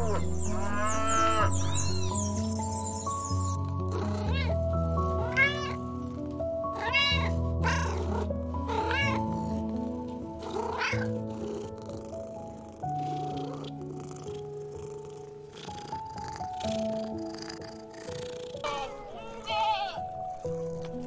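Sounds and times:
kitten meowing: 0.0s - 2.3s, 4.0s - 4.6s, 5.2s - 5.8s, 6.8s - 8.1s, 8.7s - 9.3s, 10.6s - 11.1s, 18.6s - 20.1s
soft background music: 0.0s - 21.0s.

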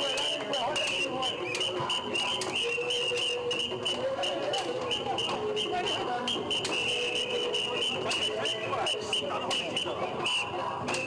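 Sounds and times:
lion dance percussion: 0.0s - 11.0s
steady high whistle tone: 0.0s - 11.0s.

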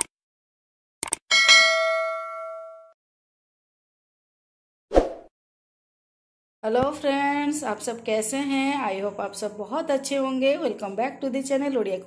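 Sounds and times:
bright bell ding: 1.3s - 3.0s.

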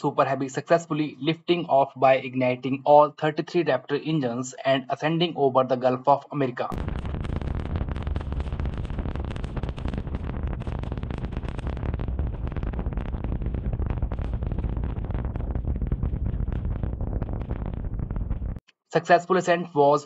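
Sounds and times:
rocket engines rumbling and crackling: 6.4s - 18.6s.

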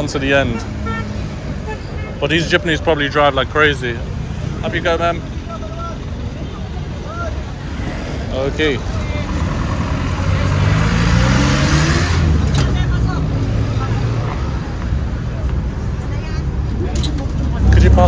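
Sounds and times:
wind and road noise: 0.0s - 18.0s
diesel engine accelerating: 2.8s - 15.2s, 17.2s - 18.0s.

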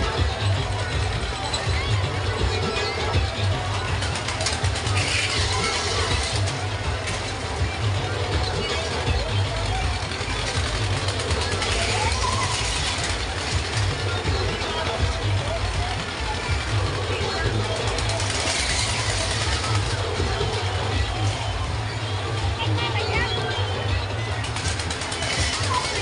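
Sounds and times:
music: 0.0s - 26.0s
spinning fairground ride din: 0.0s - 26.0s
voices: 0.0s - 26.0s.

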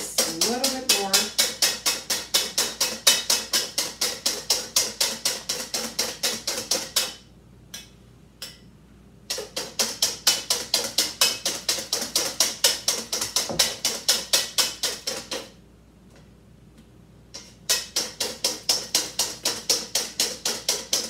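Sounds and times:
whisk beating in metal bowl: 0.0s - 7.2s, 9.3s - 15.5s, 17.4s - 21.0s
whisk tapping bowl: 0.0s - 7.2s, 9.3s - 15.6s, 17.4s - 21.0s.

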